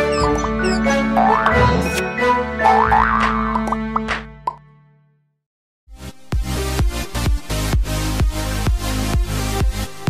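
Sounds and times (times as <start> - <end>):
playful cartoon jingle: 0.0 - 4.1.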